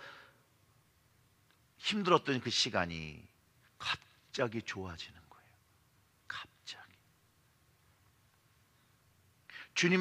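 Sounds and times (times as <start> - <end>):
man speaking: 1.8 - 5.6, 6.3 - 7.0, 9.6 - 10.0
breathy whispered sounds: 6.3 - 7.0.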